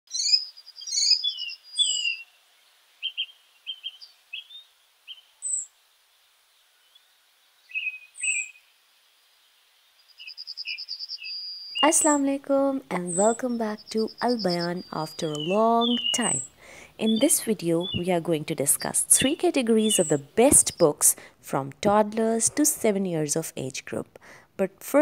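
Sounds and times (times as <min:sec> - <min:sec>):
birds chirping: 0:00.1 - 0:08.7, 0:10.0 - 0:24.0.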